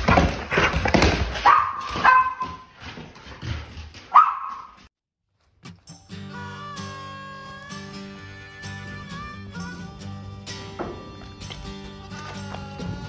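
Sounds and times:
dog barking: 1.4s - 2.6s, 4.1s - 4.8s.

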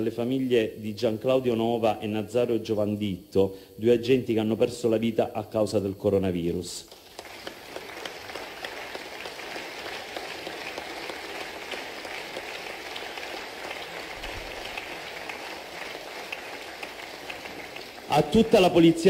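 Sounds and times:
audience applauding: 6.9s - 19.0s.

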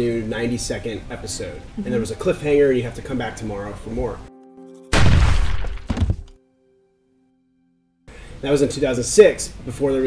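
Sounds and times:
faint held music notes: 0.0s - 5.1s.

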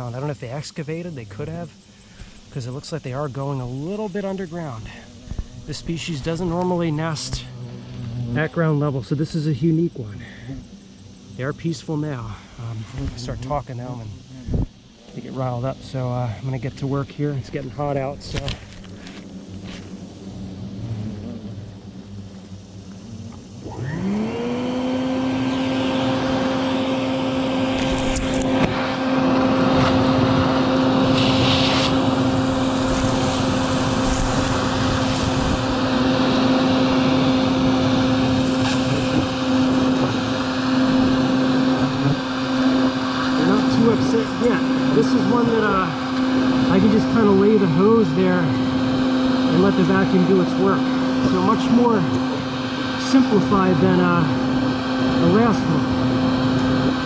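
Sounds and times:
hornets buzzing: 0.0s - 57.0s
vacuum motor humming: 0.0s - 57.0s.

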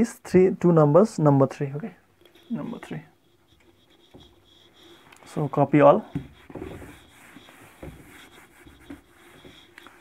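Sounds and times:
eraser rubbing on whiteboard: 2.3s - 10.0s.

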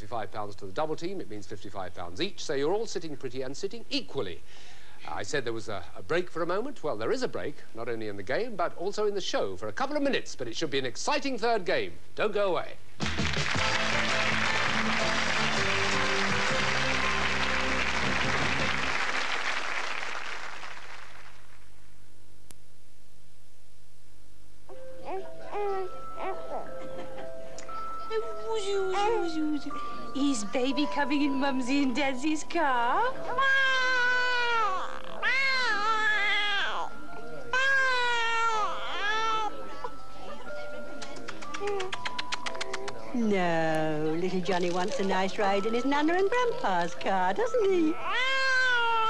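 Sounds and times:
game show theme music: 13.0s - 19.2s
studio audience applause: 13.0s - 21.6s
faint steady hum: 18.8s - 33.4s
baby wailing: 25.0s - 26.8s, 28.9s - 29.5s, 33.2s - 40.0s, 47.8s - 49.0s.

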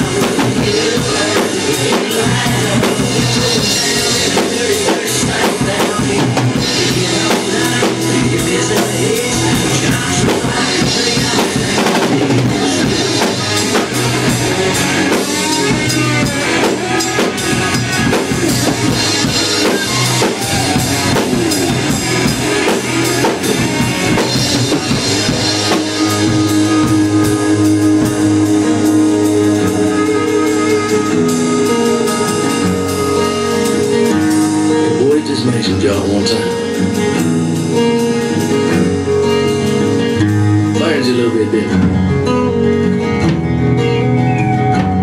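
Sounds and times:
drum kit playing: 0.0s - 45.0s
recorded instrumental music: 0.0s - 45.0s
long held notes: 24.7s - 35.2s.

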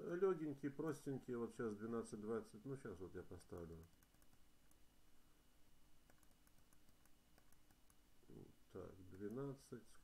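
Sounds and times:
computer mouse clicks: 3.4s - 4.8s, 6.0s - 8.0s, 9.0s - 9.5s.

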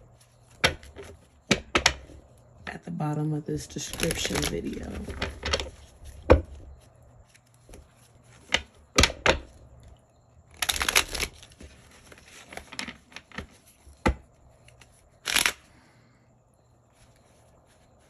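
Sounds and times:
cards being shuffled: 3.8s - 6.2s, 10.5s - 15.6s.

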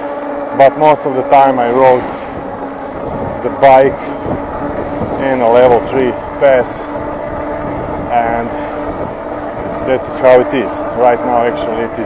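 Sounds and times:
electric hub motor whining: 0.0s - 12.0s
tyre and wind noise: 1.4s - 11.0s.

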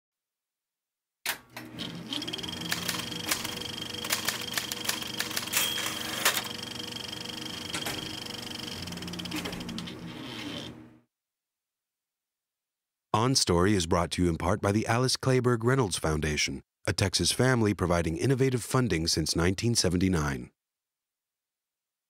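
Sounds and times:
typewriter keys clacking: 2.5s - 6.6s.

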